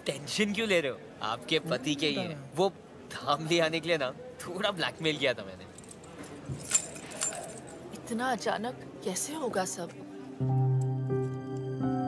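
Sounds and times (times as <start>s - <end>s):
small metal pieces jingling: 5.8s - 7.8s.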